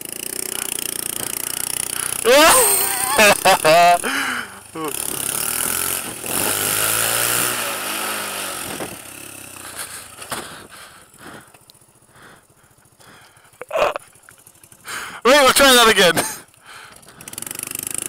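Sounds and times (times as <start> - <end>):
motorcycle engine: 0.0 - 18.0.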